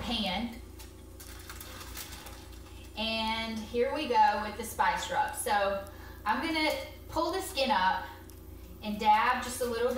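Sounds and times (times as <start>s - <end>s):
low steady hum: 0.0s - 9.9s
soft rustling of foil: 0.7s - 4.0s.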